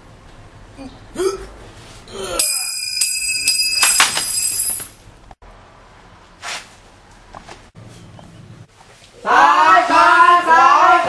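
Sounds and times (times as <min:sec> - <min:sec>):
person gasping cry: 0:02.1 - 0:02.5
metallic bell ringing: 0:02.4 - 0:05.0.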